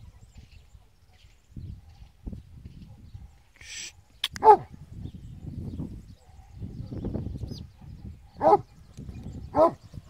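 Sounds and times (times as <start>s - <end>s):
dog barking: 4.4s - 4.7s, 7.8s - 8.7s, 9.5s - 9.8s.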